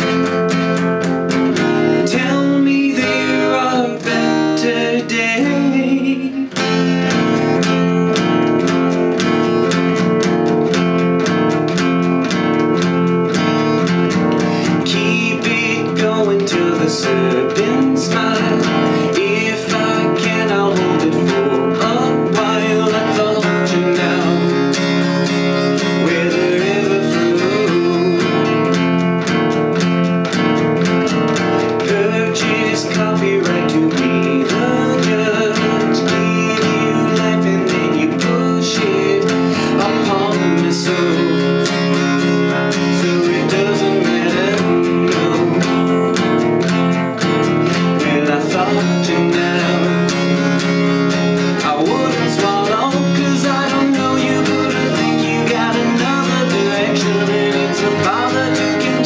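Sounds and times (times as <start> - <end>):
man singing: 0.0 - 10.7, 13.6 - 29.3, 31.5 - 59.0
acoustic guitar strumming chords: 0.0 - 59.0.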